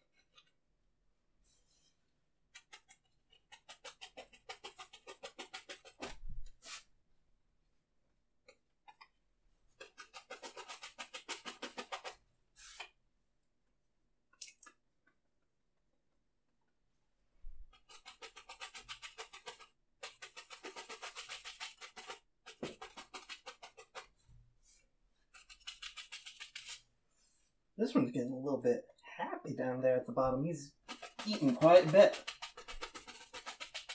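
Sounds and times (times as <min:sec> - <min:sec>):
brush dabbing paint on canvas: 0:02.5 - 0:06.9, 0:17.5 - 0:27.6, 0:30.7 - 0:33.9.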